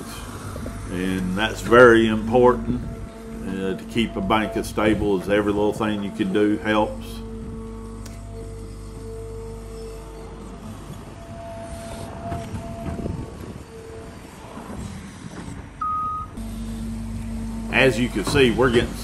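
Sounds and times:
music of long held notes: 0.0s - 14.8s
excavator digging: 0.0s - 19.0s.

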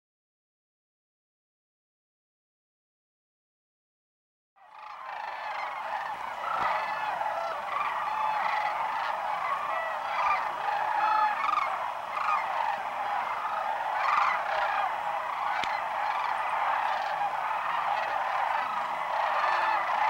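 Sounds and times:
flock of cranes calling: 4.6s - 20.0s.

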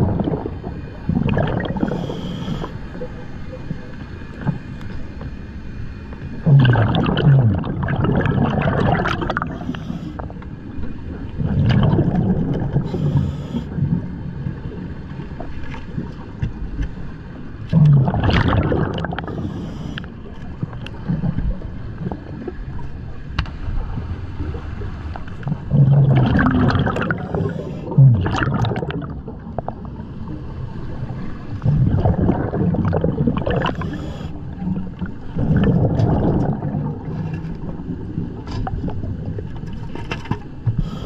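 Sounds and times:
bubbles gurgling underwater: 0.0s - 4.6s, 6.4s - 10.4s, 11.1s - 16.4s, 17.6s - 19.7s, 20.5s - 39.7s
low rush of water: 15.4s - 39.9s.

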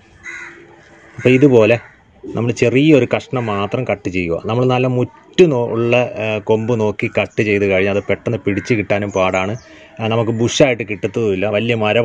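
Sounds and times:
crow cawing: 0.0s - 2.4s, 8.0s - 10.4s
man speaking: 1.2s - 12.0s.

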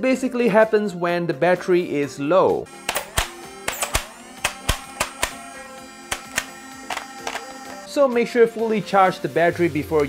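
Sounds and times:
background music with steady tones: 0.0s - 10.0s
sharp plastic clicks of toy blaster: 2.8s - 5.5s, 6.1s - 7.5s.

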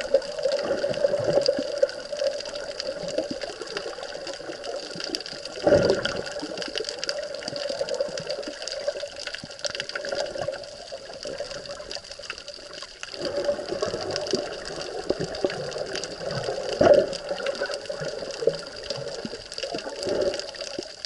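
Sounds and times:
fine crackling clicks: 0.0s - 21.0s
underwater rush: 0.0s - 21.0s.

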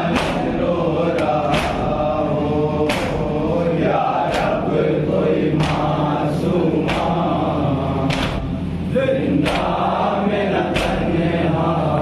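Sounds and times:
men chanting together: 0.0s - 12.0s
hands slapping chests: 0.1s - 0.5s, 1.2s - 1.9s, 2.9s - 3.2s, 5.6s - 6.0s, 6.8s - 7.2s, 8.1s - 8.5s.

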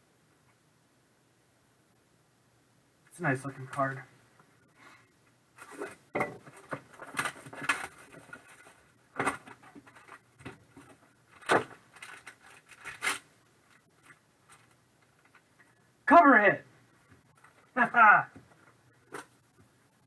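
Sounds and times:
foil pouches crinkling: 5.6s - 15.5s.

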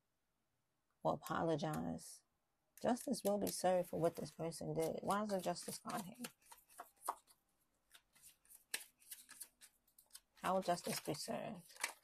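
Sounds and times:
cards flicking and snapping: 7.9s - 10.2s.

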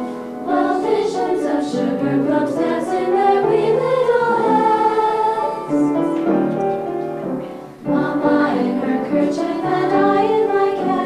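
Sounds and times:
girls singing unaccompanied: 0.4s - 6.0s, 7.8s - 11.0s.

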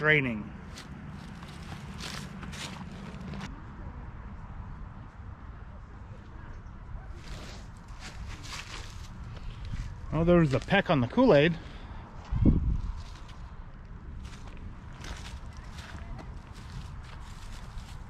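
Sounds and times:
rustling handling sounds: 0.6s - 3.5s, 7.2s - 10.9s
wind rumbling on microphone: 6.2s - 10.3s, 12.0s - 18.0s.

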